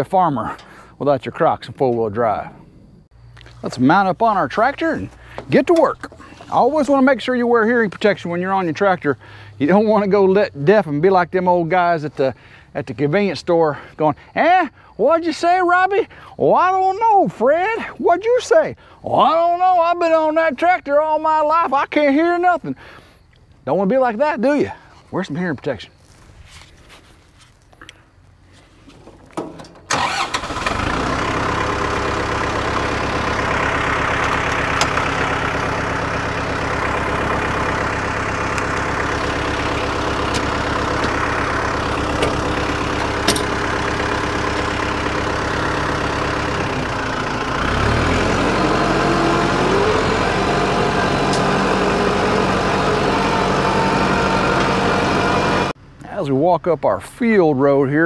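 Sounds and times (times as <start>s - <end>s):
tractor diesel engine running: 0.0s - 23.2s, 24.7s - 56.2s.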